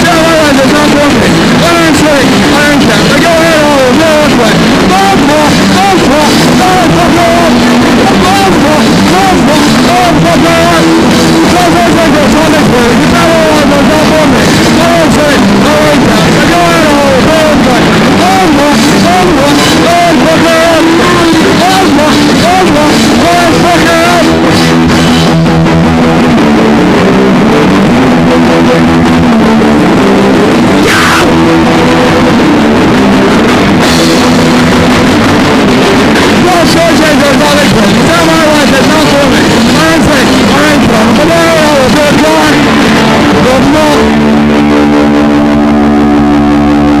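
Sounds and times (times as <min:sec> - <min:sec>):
rock song: 0:00.0 - 0:47.0
electric guitar chord ringing: 0:00.9 - 0:36.6, 0:37.6 - 0:47.0.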